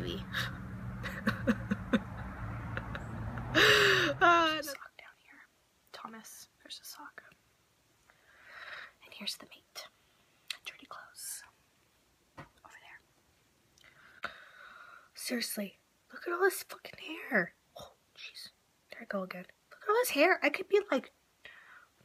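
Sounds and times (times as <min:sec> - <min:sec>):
woman laughing loudly: 0:00.4 - 0:04.6
soft whispering: 0:04.1 - 0:07.4, 0:08.6 - 0:11.7, 0:12.6 - 0:13.1, 0:15.2 - 0:21.9.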